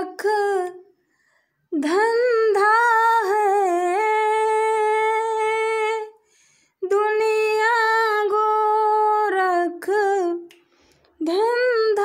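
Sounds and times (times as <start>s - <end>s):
woman singing unaccompanied: 0.0s - 0.9s, 1.7s - 6.2s, 6.8s - 10.5s, 11.2s - 12.0s.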